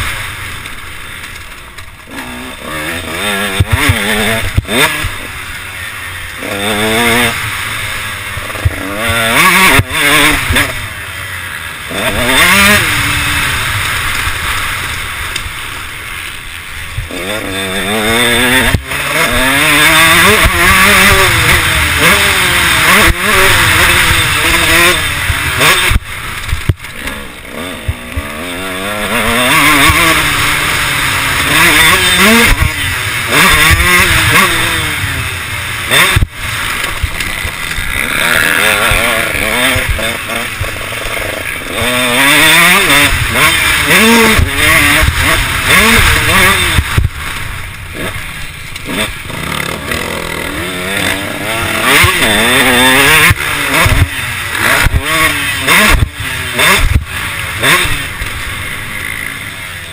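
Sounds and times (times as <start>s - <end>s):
motocross engine revving: 0.0s - 59.9s.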